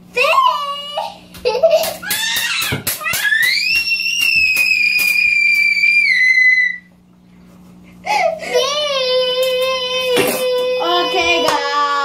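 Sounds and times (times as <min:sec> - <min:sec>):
child screaming high-pitched: 0:02.0 - 0:06.9, 0:08.5 - 0:12.0.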